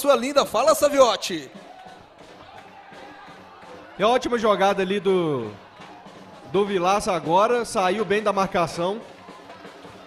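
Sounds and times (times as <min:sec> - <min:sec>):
low stadium background noise: 0:00.0 - 0:10.0.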